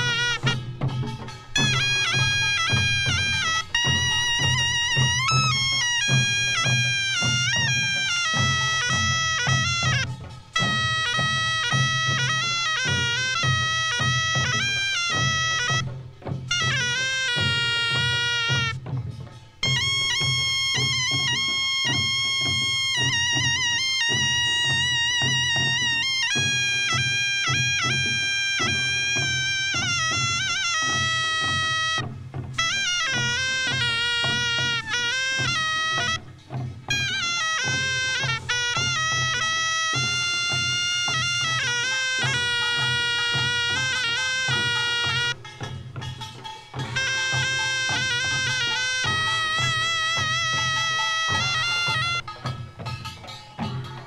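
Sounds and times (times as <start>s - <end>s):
drums beating: 0.0s - 54.0s
shawm playing melody: 0.0s - 54.0s.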